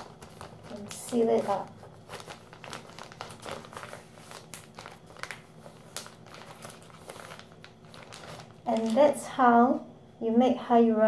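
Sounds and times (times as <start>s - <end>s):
plastic bag crinkling: 0.0s - 9.3s.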